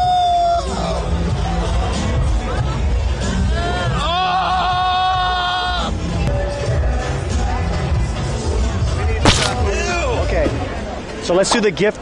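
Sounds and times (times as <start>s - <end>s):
background music with low beat: 9.3s - 11.4s.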